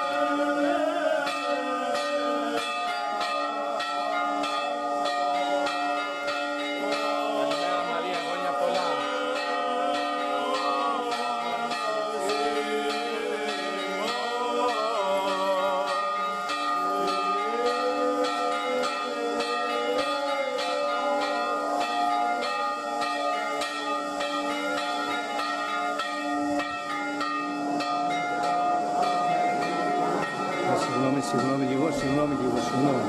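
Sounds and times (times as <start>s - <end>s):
person chanting: 0.0s - 25.8s, 28.3s - 33.0s
church bells pealing: 0.0s - 33.0s.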